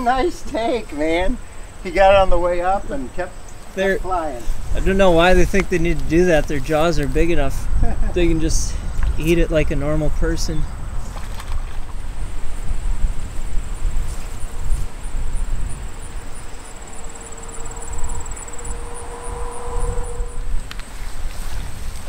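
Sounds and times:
wind buffeting microphone: 0:01.3 - 0:22.0
faint steady hum: 0:12.0 - 0:22.0.

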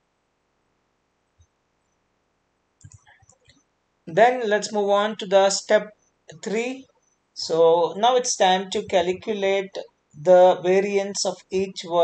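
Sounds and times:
computer mouse clicks: 0:02.8 - 0:03.6.

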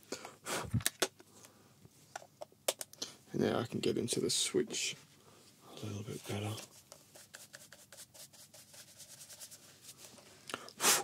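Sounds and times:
rubbing hiss: 0:10.8 - 0:11.0.

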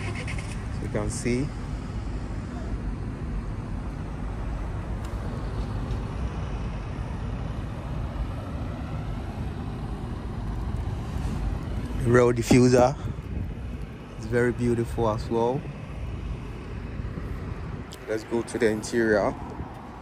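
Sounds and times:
low outdoor rumble: 0:00.0 - 0:20.0.

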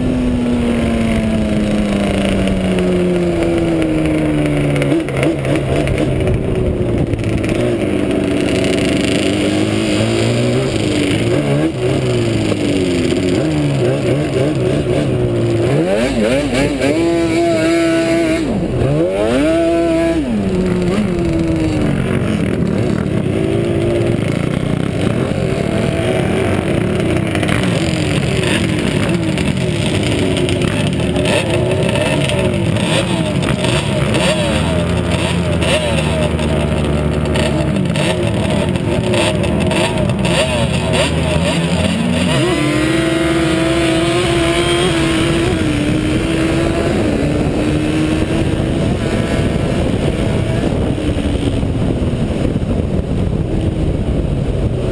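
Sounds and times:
quad two-stroke engine revving: 0:00.0 - 0:54.9.

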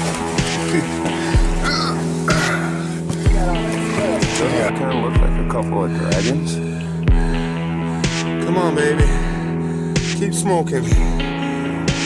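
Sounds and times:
sustained chords over drum beat: 0:00.0 - 0:12.0.

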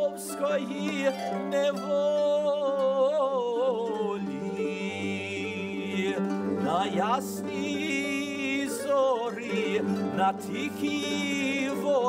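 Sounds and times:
man singing with vibrato: 0:00.0 - 0:12.0
plucked string instrument: 0:00.0 - 0:12.0.

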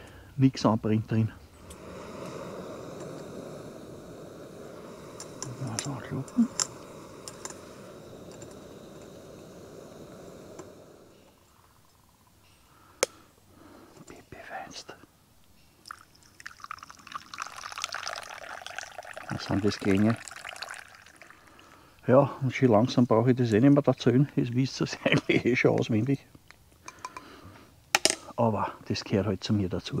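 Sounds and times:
gas camping stove burner: 0:01.5 - 0:12.0, 0:17.3 - 0:26.0
coffee pouring into mug: 0:01.6 - 0:11.2, 0:15.8 - 0:22.0.

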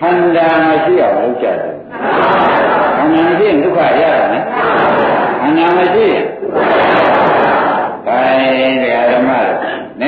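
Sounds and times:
man speaking: 0:00.0 - 0:01.8, 0:03.0 - 0:04.4, 0:05.4 - 0:06.5, 0:08.0 - 0:10.0
many voices answering together: 0:01.9 - 0:03.1, 0:04.3 - 0:05.5, 0:06.5 - 0:08.0.

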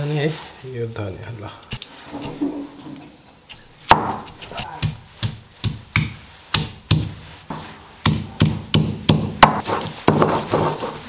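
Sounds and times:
stone pestle knocking on stone: 0:03.9 - 0:07.2, 0:08.0 - 0:10.8.

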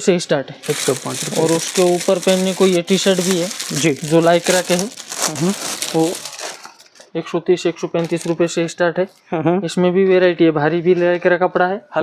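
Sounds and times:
man talking: 0:00.0 - 0:06.4, 0:07.2 - 0:12.0
plastic packaging crinkling: 0:00.6 - 0:07.2, 0:08.0 - 0:08.6.

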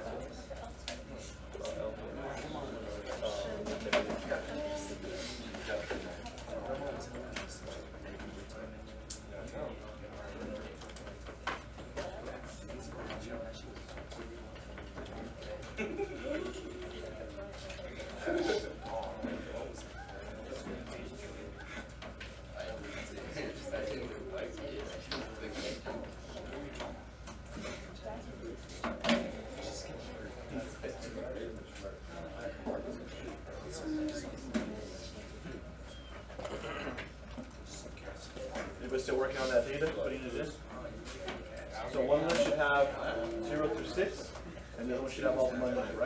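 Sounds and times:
indistinct chatter of voices: 0:00.0 - 0:46.0.

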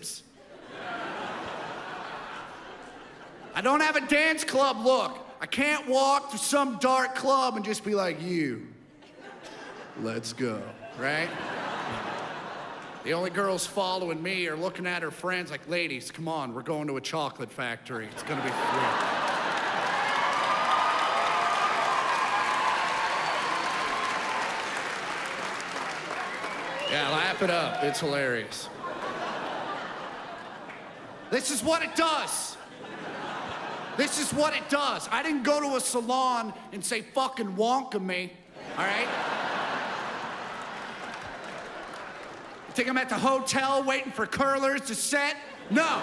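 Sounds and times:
audience laughing: 0:00.0 - 0:04.1, 0:08.9 - 0:14.2, 0:18.0 - 0:21.1, 0:24.9 - 0:36.0, 0:38.5 - 0:43.4, 0:45.3 - 0:46.0
crowd noise: 0:00.0 - 0:06.4, 0:07.0 - 0:15.2, 0:17.9 - 0:36.8, 0:38.4 - 0:46.0
audience clapping: 0:11.7 - 0:13.1, 0:18.2 - 0:32.2, 0:38.9 - 0:43.8.

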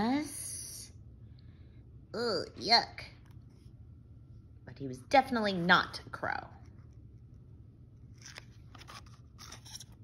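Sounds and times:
paper page rustling: 0:08.0 - 0:10.0.

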